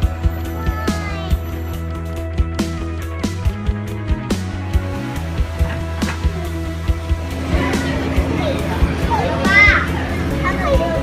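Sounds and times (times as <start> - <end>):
background music: 0.0 - 11.0
child calling out: 0.4 - 1.4, 9.2 - 11.0.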